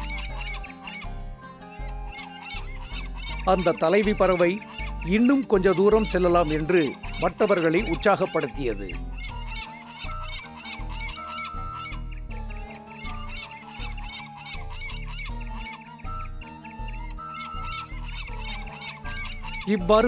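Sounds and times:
cartoon background music: 0.0s - 20.0s.

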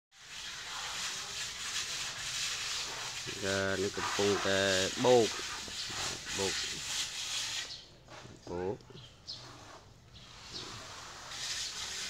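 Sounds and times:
outdoor background hiss: 0.1s - 12.0s.

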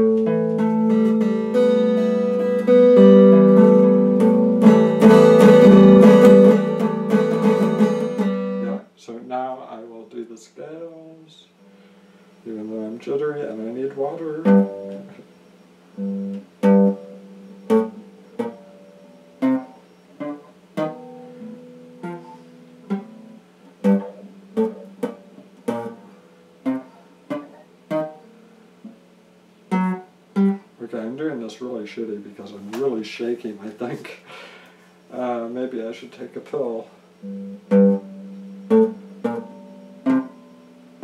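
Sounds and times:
electric guitar notes and chords: 0.0s - 8.8s, 14.4s - 15.3s, 15.9s - 29.0s, 37.2s - 41.0s.

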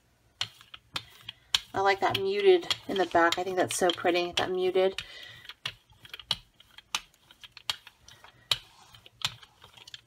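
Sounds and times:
paint roller clicking: 0.4s - 10.0s.

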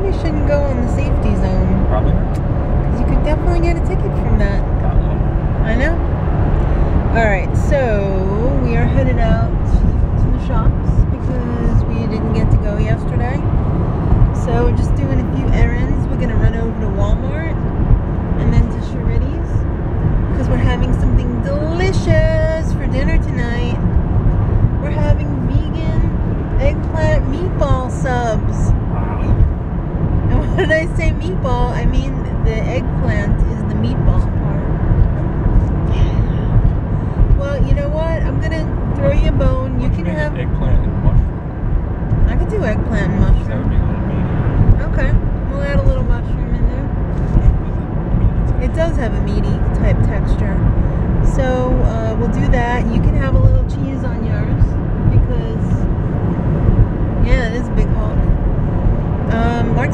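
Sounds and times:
voices talking: 0.0s - 6.1s, 7.2s - 13.5s, 14.4s - 17.6s, 18.4s - 19.6s, 20.3s - 23.8s, 24.8s - 29.5s, 30.3s - 41.3s, 42.2s - 55.8s, 57.2s - 58.3s, 59.3s - 59.9s
car road and engine rumble: 0.0s - 59.9s.

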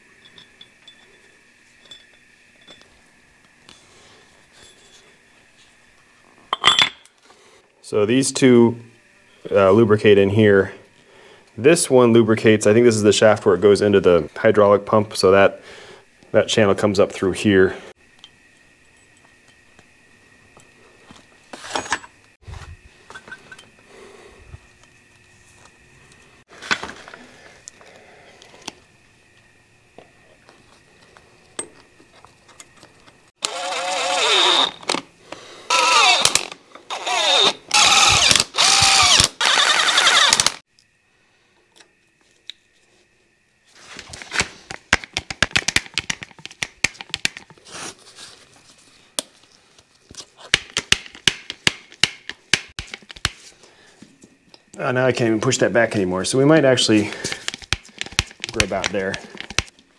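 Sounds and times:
cordless driver motor whirring: 33.4s - 35.0s, 35.7s - 40.6s.

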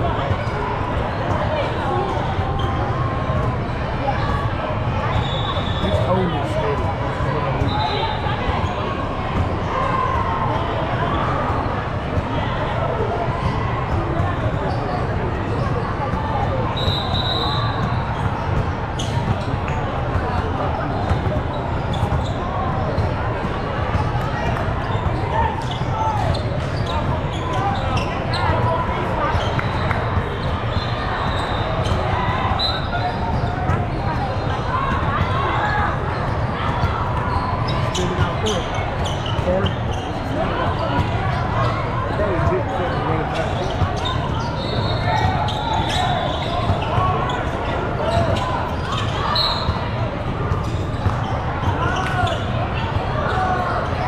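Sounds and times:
people chattering in gym hall: 0.0s - 54.0s
basketballs bouncing on court: 0.1s - 10.2s, 13.0s - 16.8s, 17.6s - 41.5s, 42.3s - 53.8s.

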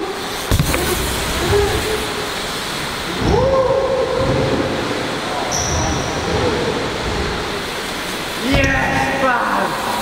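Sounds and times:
bike tyres rolling over ramps: 0.0s - 9.2s
low thumps: 0.5s - 5.2s.

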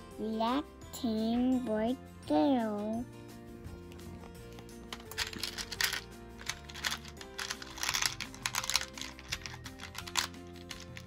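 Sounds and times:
background music: 0.0s - 11.0s
plastic beads rattling: 4.5s - 11.0s.

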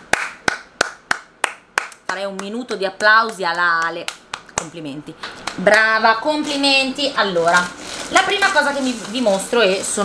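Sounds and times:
woman clapping slowly: 0.0s - 4.7s.

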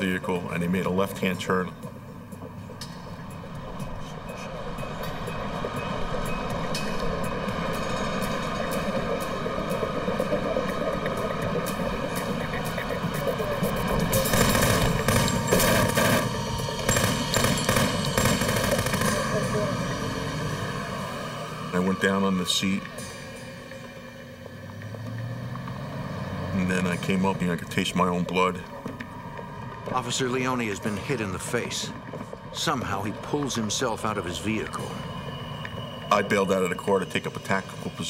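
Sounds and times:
tense sound bed: 0.0s - 38.0s
rapid gunfire: 14.0s - 19.8s.

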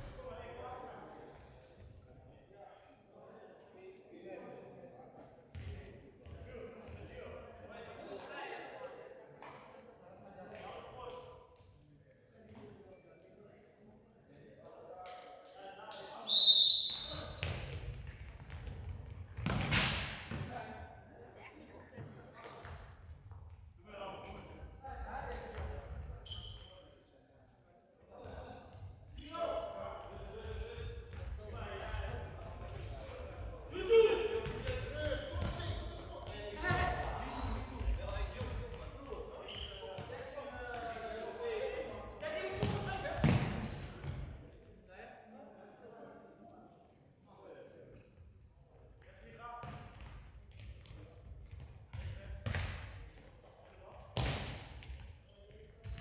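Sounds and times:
ball kicked and bouncing indoors: 17.4s - 20.5s, 54.2s - 55.1s.

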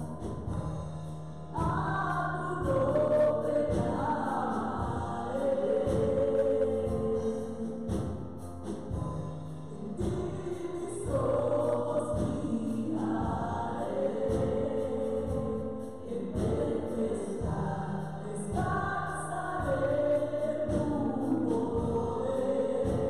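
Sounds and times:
drums: 0.0s - 18.9s, 19.5s - 23.0s
keyboard: 0.0s - 23.0s
women singing together: 1.5s - 8.3s, 9.7s - 23.0s.

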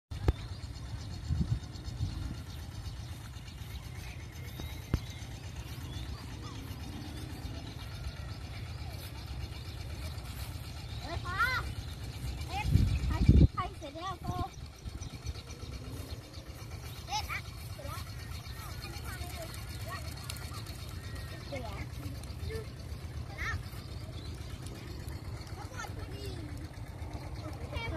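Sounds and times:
wind rumble on microphone: 0.2s - 3.4s, 11.8s - 16.8s
children calling out: 3.8s - 27.9s.

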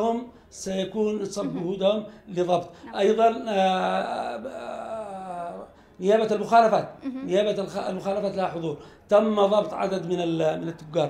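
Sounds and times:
man saying ehh: 1.4s - 1.9s.

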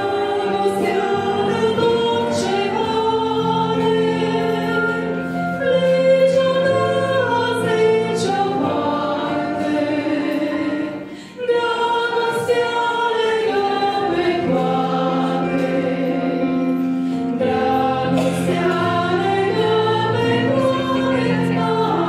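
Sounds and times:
women singing through microphones: 0.0s - 16.7s, 17.4s - 22.0s.

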